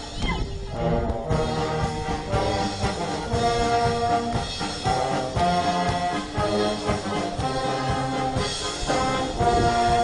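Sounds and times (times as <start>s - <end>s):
brass band playing a march: 0.0s - 10.0s
drum beat: 1.0s - 10.0s.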